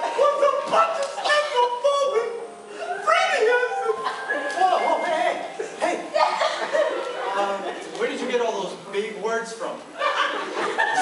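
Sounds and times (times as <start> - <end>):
chuckling laughter: 5.1 - 7.8, 10.0 - 11.0.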